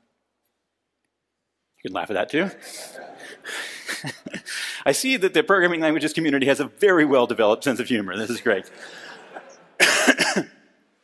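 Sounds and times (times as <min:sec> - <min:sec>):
person coughing: 0:09.3 - 0:10.7.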